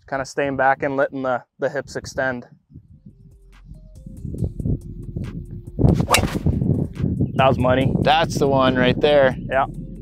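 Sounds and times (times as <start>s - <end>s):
low rumble: 2.8s - 10.0s
golf club striking ball: 6.0s - 6.6s.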